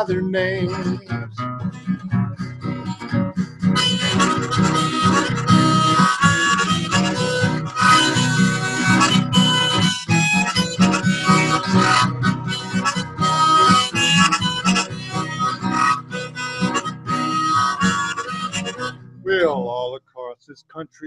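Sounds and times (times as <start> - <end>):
harmonica melody: 0.0 - 19.9
strummed acoustic guitar: 0.0 - 19.9.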